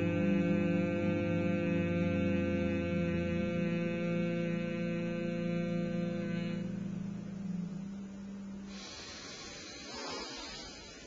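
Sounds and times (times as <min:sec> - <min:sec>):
man humming low note: 0:00.0 - 0:11.0.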